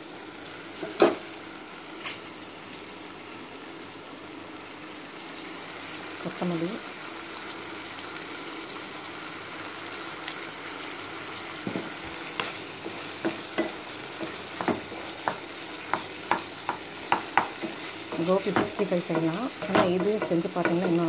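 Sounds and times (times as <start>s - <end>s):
food sizzling in a pan: 0.0s - 21.0s
utensil scraping and knocking pan: 11.7s - 21.0s.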